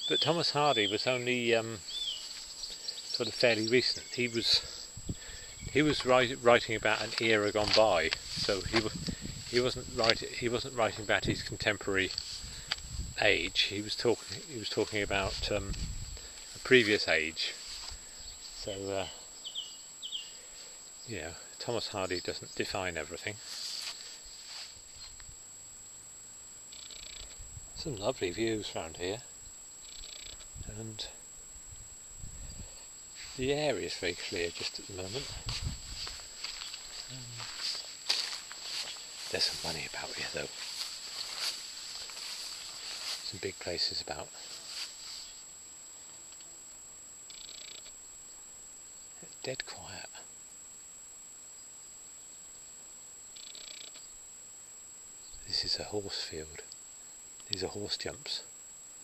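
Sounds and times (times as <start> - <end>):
faint steady high whine: 0.0 - 59.0
insect chirping trill: 0.0 - 59.0.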